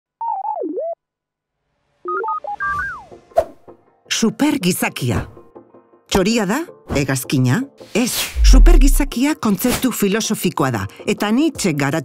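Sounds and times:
swooping synthesizer tone: 0:08.4 - 0:09.1.

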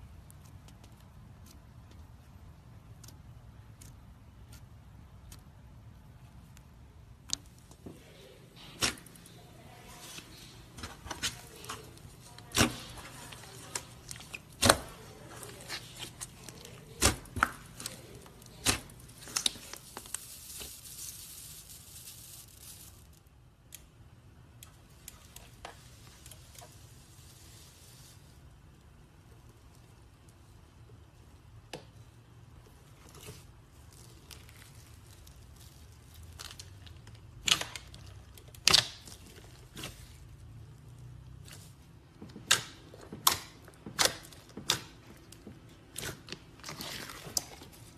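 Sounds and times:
slime squelching: 0:00.0 - 0:47.9.

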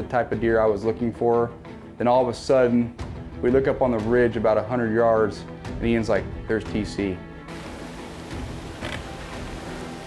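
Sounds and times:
outdoor background hiss: 0:07.3 - 0:10.0.

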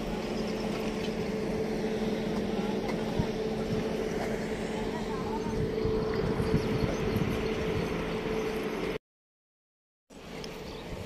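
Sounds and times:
engine droning steadily: 0:00.0 - 0:09.0, 0:10.1 - 0:11.0.

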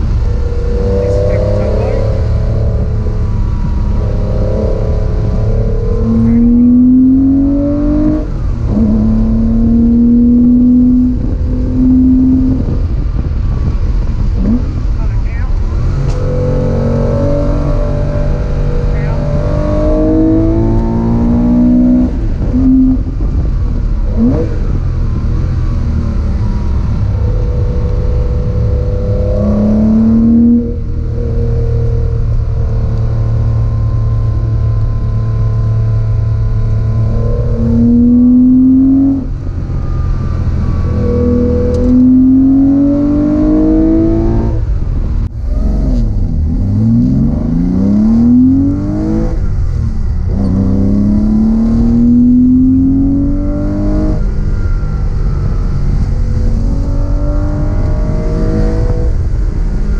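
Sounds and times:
car engine accelerating: 0:00.0 - 0:59.9
low road rumble: 0:00.0 - 0:59.9.

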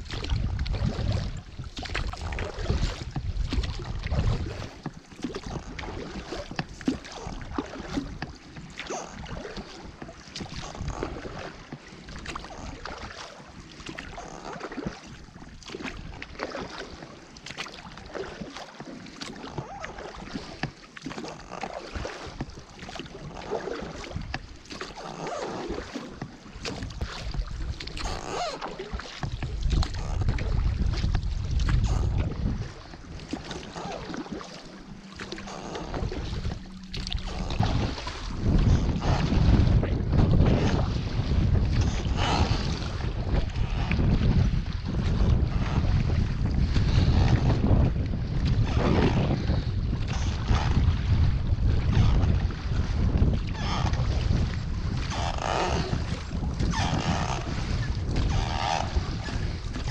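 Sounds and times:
wind buffeting microphone: 0:00.0 - 0:13.0, 0:22.0 - 0:59.9
water sloshing around dinghy: 0:00.0 - 0:59.9.

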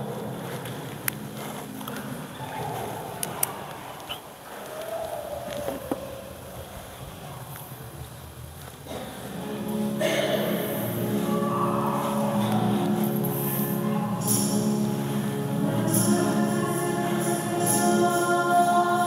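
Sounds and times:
hymn music: 0:08.9 - 0:19.0.

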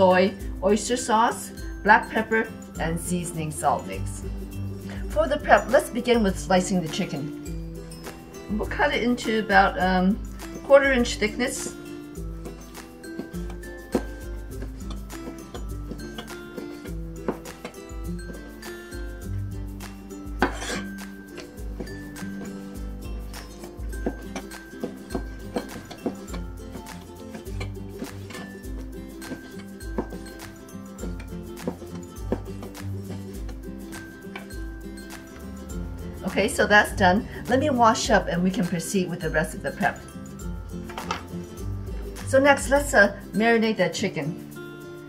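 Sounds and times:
background music with bass: 0:00.0 - 0:43.4.

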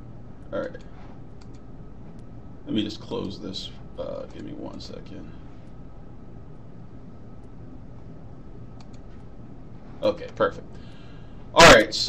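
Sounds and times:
static and low hum: 0:00.0 - 0:12.0
faint clicks: 0:00.8 - 0:02.3, 0:08.7 - 0:09.3.

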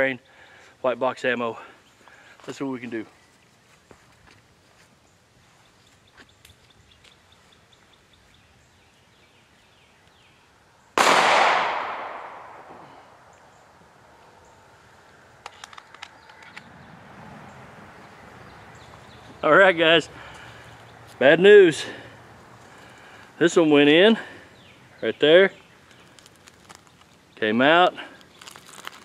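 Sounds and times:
pistol shot with echo: 0:11.0 - 0:12.9.

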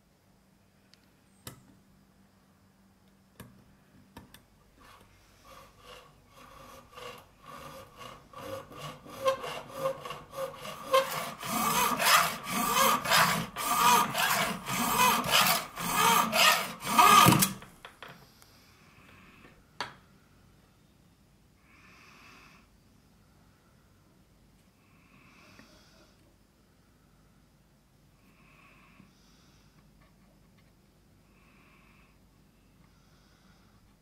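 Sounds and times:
hacksaw cutting brass: 0:05.5 - 0:17.6.

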